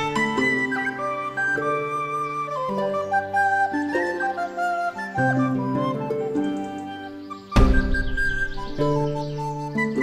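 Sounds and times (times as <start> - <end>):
flute-like melody: 0.0 - 10.0.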